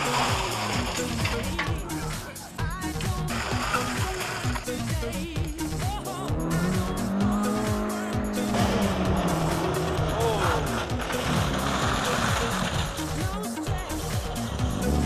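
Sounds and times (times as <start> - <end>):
tyres skidding on gravel: 0.0 - 2.2, 2.9 - 13.4
car engine at high revs: 5.5 - 13.0.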